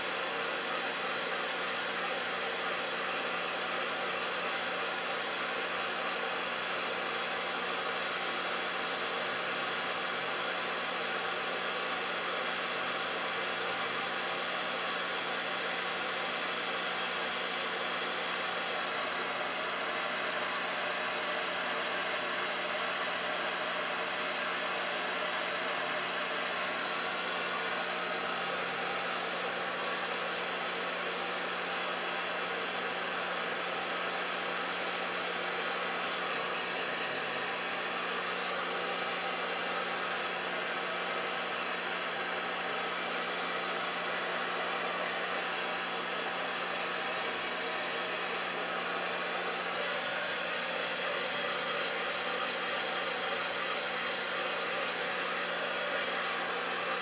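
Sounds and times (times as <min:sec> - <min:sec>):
hair dryer running: 0:00.0 - 0:57.0.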